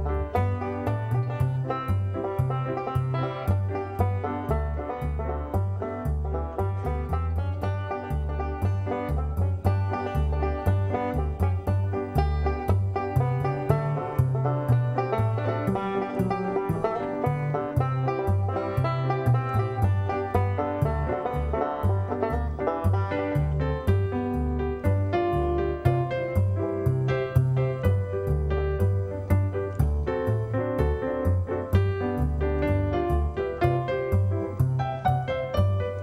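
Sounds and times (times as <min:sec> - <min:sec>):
banjo picking bluegrass tune: 0:00.0 - 0:36.0
bass notes: 0:00.0 - 0:36.0.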